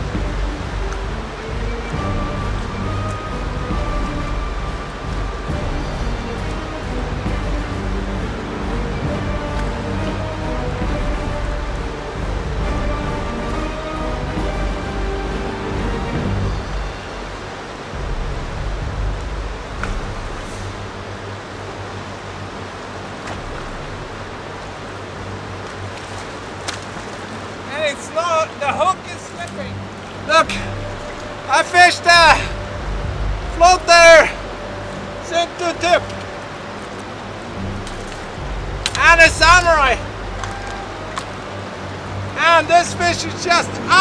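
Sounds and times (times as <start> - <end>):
river rapids rushing: 0.0 - 44.0
faint clicks: 40.3 - 41.4.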